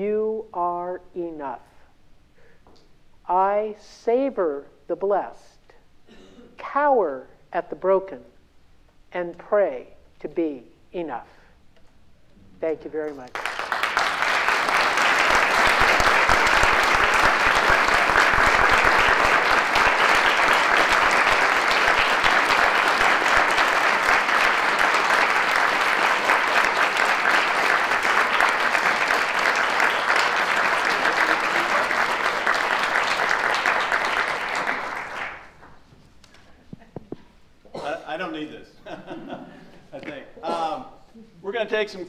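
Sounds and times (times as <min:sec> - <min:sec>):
audience applauding: 0:13.3 - 0:35.9.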